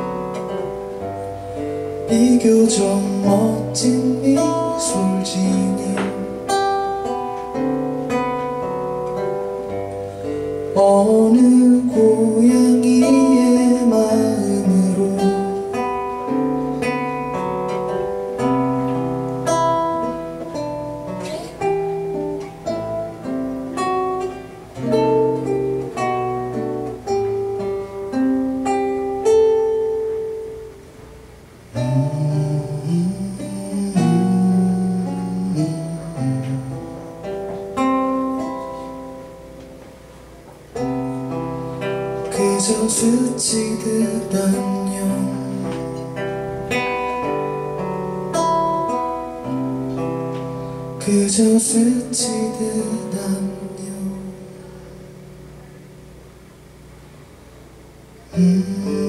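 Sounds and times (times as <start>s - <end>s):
classical guitar playing: 0.0s - 59.0s.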